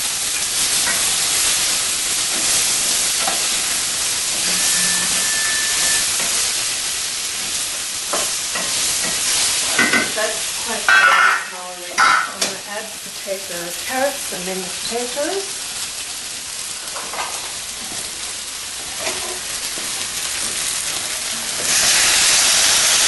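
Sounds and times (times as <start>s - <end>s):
food sizzling in a pot: 0.0s - 23.0s.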